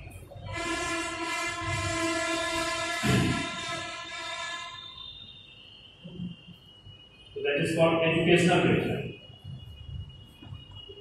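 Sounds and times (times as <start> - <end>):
train horn blast: 0.5 - 5.1
dull thump: 3.0 - 3.6.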